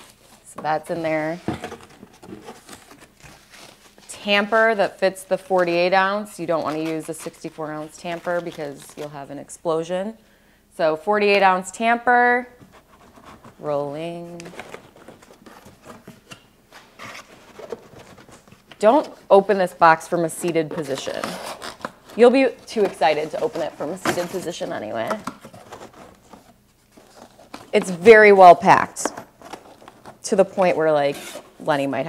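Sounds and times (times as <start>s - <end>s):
cardboard and paper rustling: 0.0s - 9.1s, 12.5s - 31.8s.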